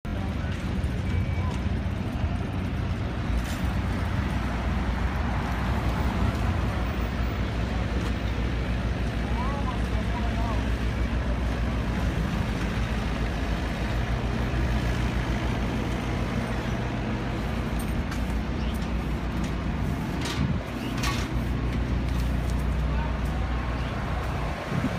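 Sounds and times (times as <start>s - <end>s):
street traffic: 0.0s - 24.9s
faint voices: 22.4s - 24.9s.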